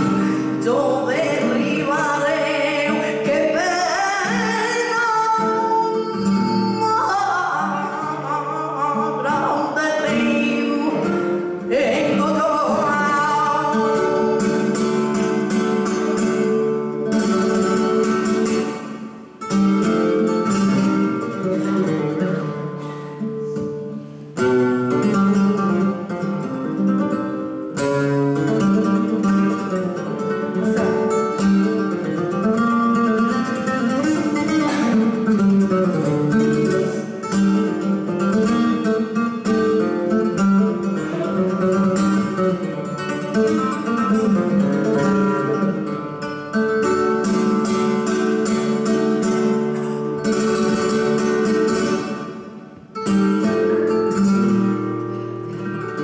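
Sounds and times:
flamenco guitar playing: 0.0 - 56.0.

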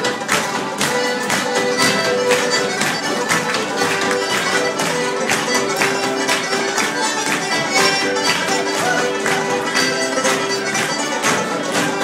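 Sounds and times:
traditional folk music: 0.0 - 12.0.

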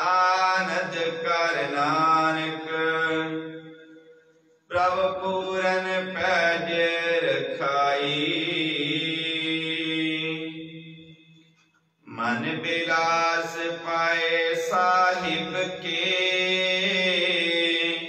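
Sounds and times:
man chanting: 0.0 - 3.8, 4.7 - 11.1, 12.1 - 18.0.

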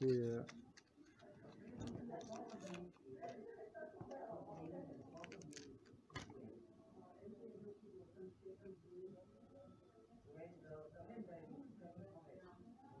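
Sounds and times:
blister card crinkling and clicking: 0.0 - 3.4, 4.0 - 6.3
faint background talk: 0.0 - 13.0.

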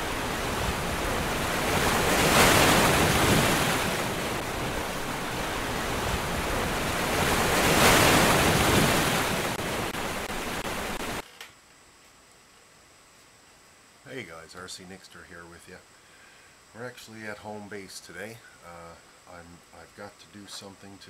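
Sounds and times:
steady rushing noise: 0.0 - 11.2.

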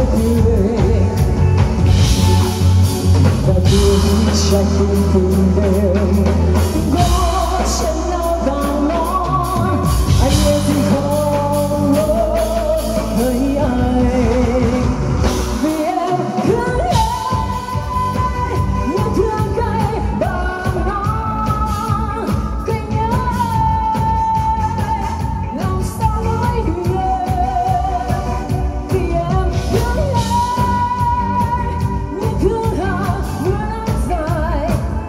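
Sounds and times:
bass: 0.0 - 35.0
drum kit: 0.0 - 35.0
electric guitar: 0.0 - 35.0
woman singing into a microphone: 0.0 - 35.0.

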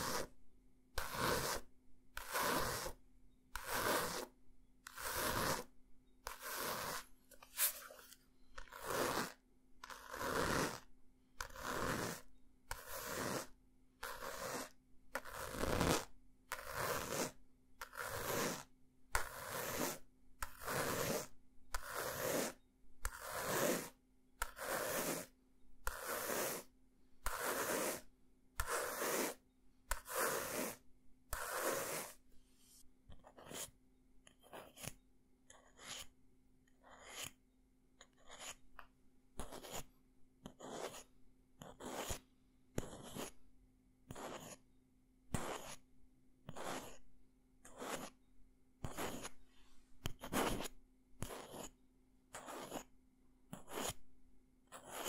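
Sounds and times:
fingernails scratching a book cover: 0.0 - 0.3, 1.0 - 3.0, 3.6 - 8.0, 8.6 - 32.2, 33.2 - 33.7, 34.3 - 36.1, 36.8 - 37.4, 38.1 - 38.6, 39.4 - 42.2, 42.8 - 43.4, 44.1 - 44.6, 45.3 - 45.8, 46.5 - 47.0, 47.7 - 48.2, 48.8 - 49.4, 50.0 - 52.9, 53.5 - 54.0, 54.7 - 55.0.

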